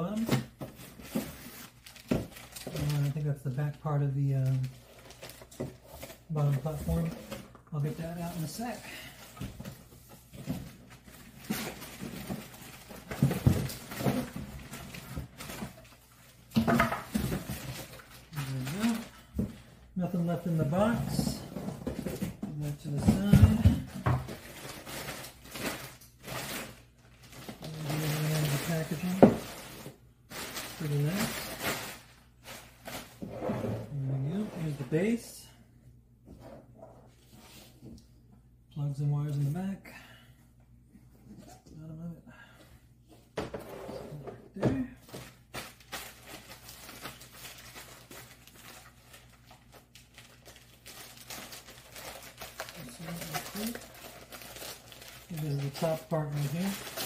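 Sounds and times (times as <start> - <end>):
plastic film crinkling: 0.0 - 9.4, 10.8 - 19.3, 22.6 - 33.2, 45.1 - 57.0
plastic bag rustling: 0.0 - 35.3, 45.0 - 57.0.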